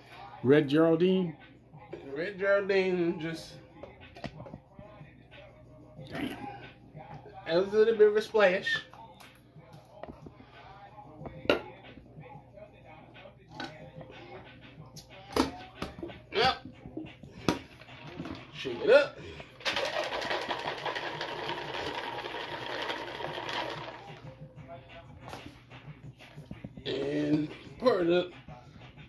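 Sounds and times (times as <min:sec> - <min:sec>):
ice rattling in cocktail shaker: 0:19.6 - 0:24.2.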